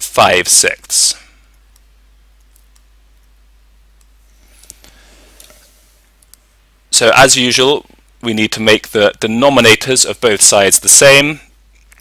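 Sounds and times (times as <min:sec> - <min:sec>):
person speaking: 0:00.0 - 0:01.6, 0:06.9 - 0:11.5
faint clicks: 0:06.2 - 0:06.4.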